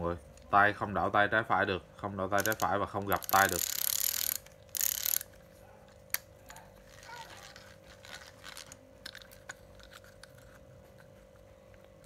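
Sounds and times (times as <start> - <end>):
faint steady hum: 0.0 - 12.0
fishing reel gear whir: 2.4 - 5.4, 6.9 - 9.2.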